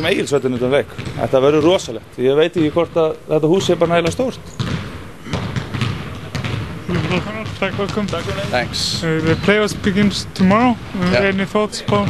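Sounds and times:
man talking: 0.0s - 4.4s, 6.9s - 12.0s
basketballs bouncing on hardwood floor: 0.0s - 12.0s.

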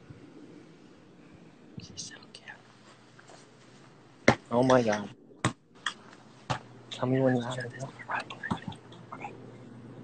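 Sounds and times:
faint whispering: 1.1s - 3.0s, 6.9s - 10.0s.

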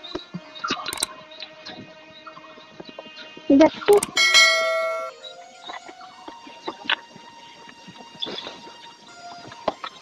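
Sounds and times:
bell chime ringing: 4.1s - 5.2s.

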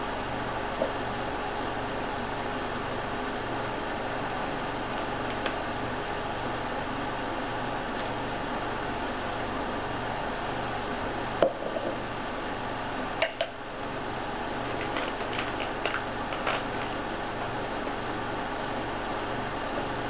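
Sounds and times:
background hum and hiss: 0.0s - 20.0s.

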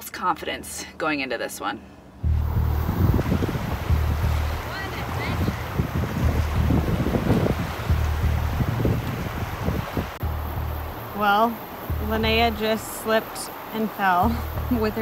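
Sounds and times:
background music with deep bass: 2.2s - 4.8s, 5.4s - 13.1s, 14.2s - 15.0s
wind noise on microphone: 2.2s - 12.9s, 14.2s - 15.0s
rushing river water: 2.2s - 15.0s.

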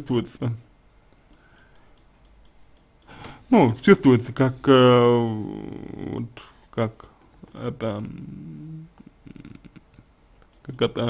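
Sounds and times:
man humming hesitantly: 8.0s - 10.0s.

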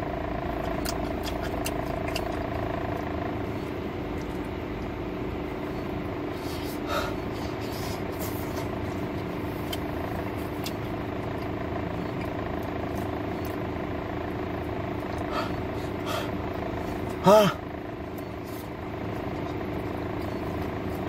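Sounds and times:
car engine idling: 0.0s - 21.0s
person chewing food: 0.5s - 13.7s, 18.1s - 21.0s.

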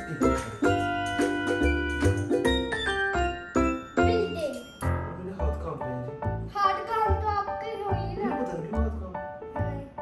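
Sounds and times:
upbeat background music: 0.0s - 10.0s.

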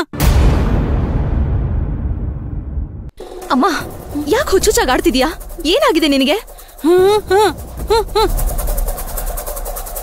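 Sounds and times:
low rumble with ticking pulse: 2.4s - 10.0s
woman speaking: 3.4s - 8.4s.

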